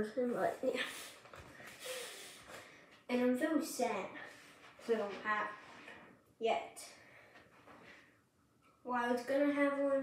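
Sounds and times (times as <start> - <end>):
boy exhaling through the nose: 0.8 - 2.7.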